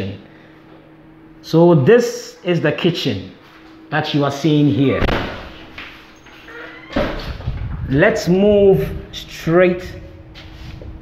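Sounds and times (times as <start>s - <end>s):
faint steady hum: 0.0s - 11.0s
sharp thump: 5.0s - 5.5s.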